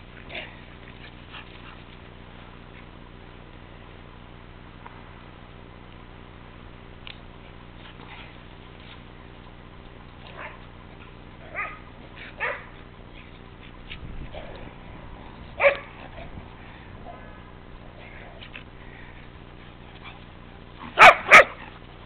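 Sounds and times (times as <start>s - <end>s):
dog yipping and barking: 11.5s - 12.7s, 15.6s - 15.9s, 21.0s - 21.7s.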